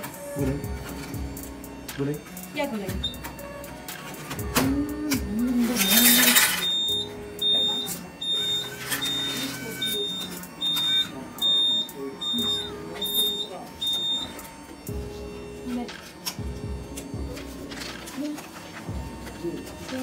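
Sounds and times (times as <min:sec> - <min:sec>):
vending machine beeping: 0:00.0 - 0:20.0.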